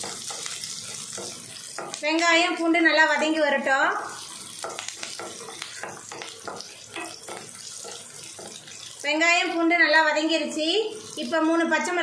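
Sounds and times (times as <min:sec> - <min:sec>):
spatula scraping and tapping pan: 0:00.0 - 0:02.4, 0:04.1 - 0:09.0
shallots sizzling in oil: 0:00.0 - 0:12.0.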